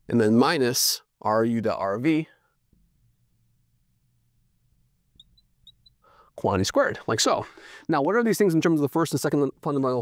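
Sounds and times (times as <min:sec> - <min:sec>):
marker squeaking on glass: 0:04.8 - 0:06.2.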